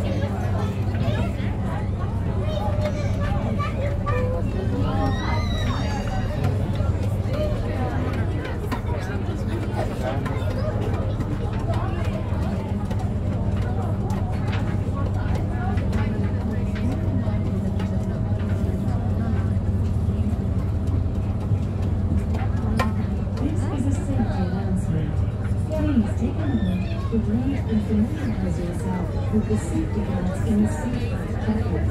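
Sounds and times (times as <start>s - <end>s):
boat engine droning: 0.0s - 31.9s
indistinct passenger chatter: 0.0s - 31.9s.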